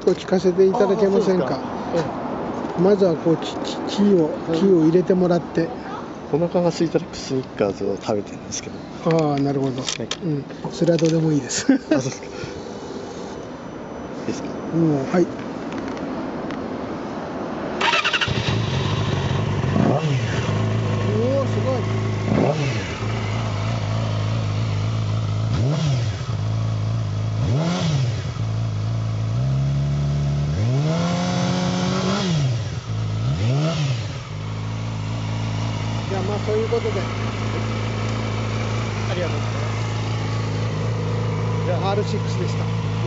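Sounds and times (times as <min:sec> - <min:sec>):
motorcycle engine starting and idling: 0:17.8 - 0:43.0
motorcycle throttle revs: 0:17.8 - 0:43.0.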